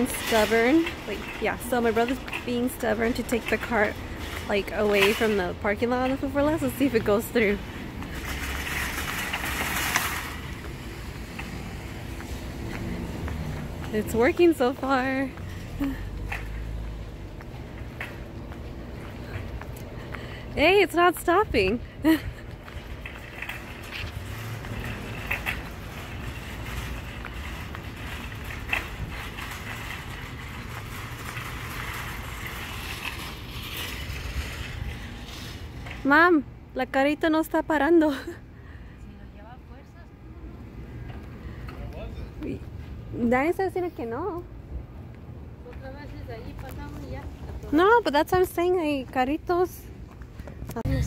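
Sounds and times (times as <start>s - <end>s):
steady low rumble: 0.0s - 36.9s, 44.4s - 51.0s
shopping cart rattling over asphalt: 0.0s - 38.4s, 45.8s - 50.0s.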